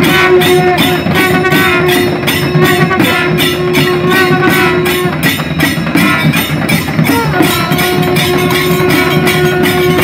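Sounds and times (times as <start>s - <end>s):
drums beating fast rhythm: 0.0s - 10.0s
wind instrument holding note: 0.0s - 10.0s.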